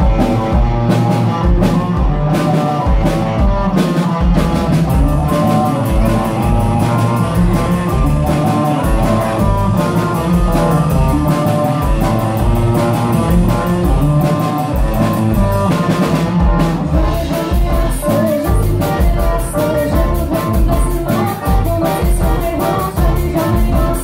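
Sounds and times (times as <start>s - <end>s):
distorted electric guitars: 0.0s - 24.0s
drum kit beat: 0.0s - 24.0s
keyboard: 0.0s - 24.0s.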